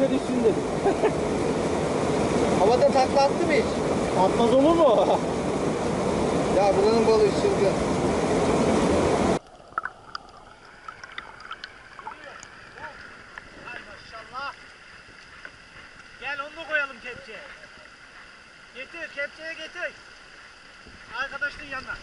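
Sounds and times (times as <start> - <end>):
rushing stream water: 0.0 - 22.0
person laughing: 0.8 - 1.2.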